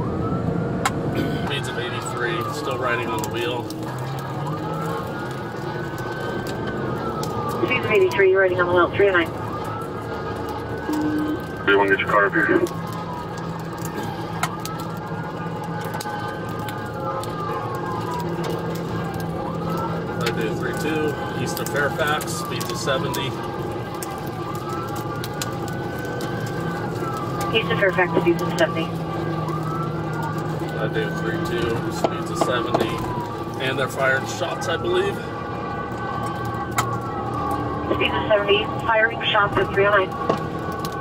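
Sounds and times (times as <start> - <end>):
car engine and road noise: 0.0 - 41.0
police siren wailing: 0.0 - 41.0.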